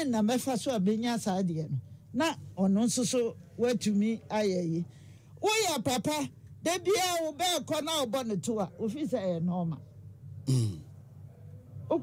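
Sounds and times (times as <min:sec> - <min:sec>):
person clearing throat: 0:10.4 - 0:10.8.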